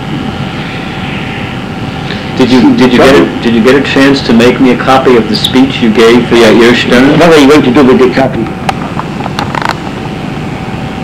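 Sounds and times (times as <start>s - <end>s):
faint even hum: 0.0s - 11.0s.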